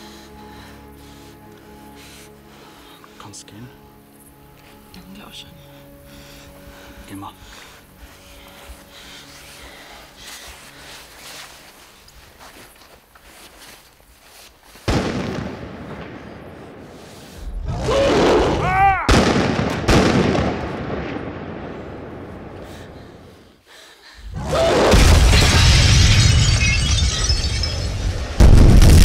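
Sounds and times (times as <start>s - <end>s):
roar with wavering pitched cry: 17.7s - 18.8s, 24.3s - 25.0s
explosion: 24.3s - 29.0s.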